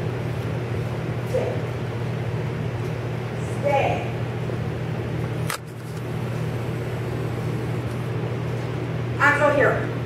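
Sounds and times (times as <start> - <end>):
low machine hum: 0.0 - 10.0.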